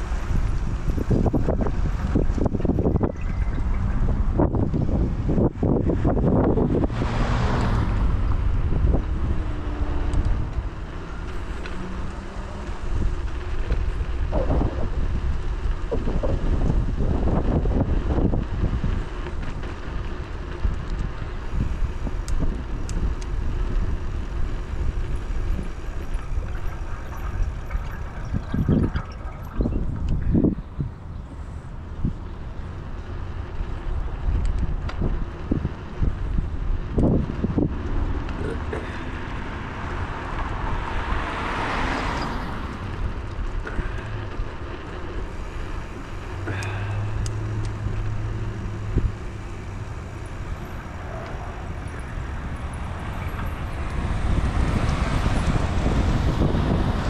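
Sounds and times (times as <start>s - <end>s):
road noise: 0.0s - 57.0s
wind buffeting microphone: 0.0s - 57.0s.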